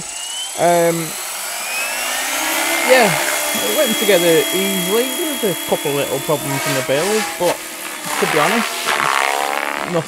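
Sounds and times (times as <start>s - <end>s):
electric motor whine: 0.0s - 10.0s
helicopter rotor noise: 0.0s - 10.0s.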